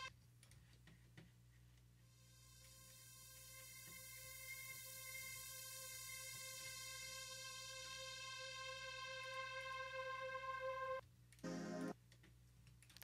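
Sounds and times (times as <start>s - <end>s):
sustained bright synthesizer note: 2.8s - 11.9s.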